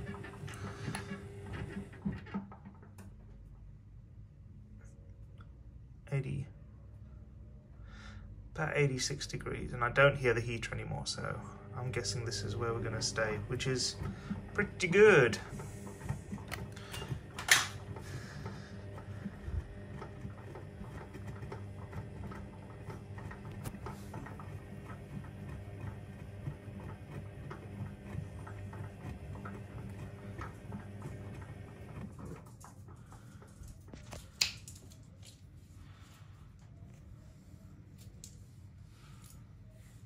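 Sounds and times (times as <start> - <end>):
washing machine drum motor humming: 0.0 - 3.8, 9.5 - 34.0.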